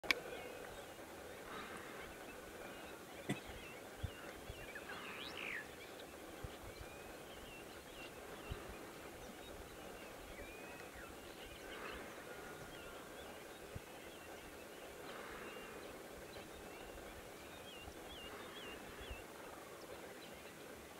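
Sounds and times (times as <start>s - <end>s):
small birds chirping: 0.1s - 20.9s.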